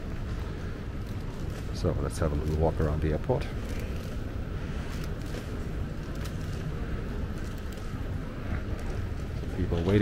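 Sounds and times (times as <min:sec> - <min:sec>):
low rumble of terminal hall: 0:00.0 - 0:10.0.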